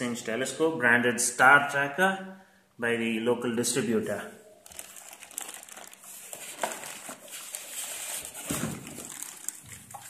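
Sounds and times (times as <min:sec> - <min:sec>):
plastic wrapping crinkling: 0:04.5 - 0:10.0.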